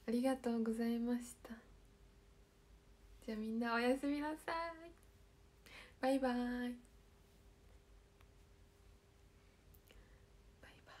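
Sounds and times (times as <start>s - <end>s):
faint steady hum: 0.0s - 11.0s
faint whisper-like breath: 5.6s - 6.0s, 9.2s - 11.0s.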